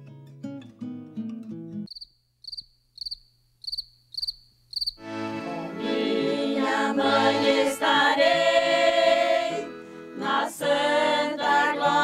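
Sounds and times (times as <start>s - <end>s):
plucked acoustic guitar: 0.0s - 1.9s
cricket chirping: 1.9s - 5.0s.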